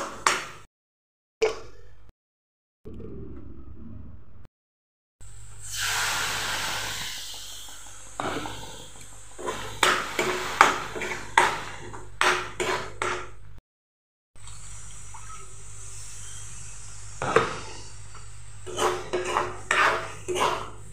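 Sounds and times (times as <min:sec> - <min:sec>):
spices sizzling in hot oil: 0:05.6 - 0:11.9
metal spoon scraping a pan: 0:09.4 - 0:13.2, 0:18.6 - 0:20.9.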